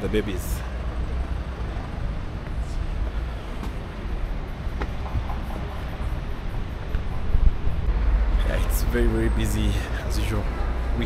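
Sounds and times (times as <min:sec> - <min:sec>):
wind buffeting microphone: 0:01.0 - 0:08.4.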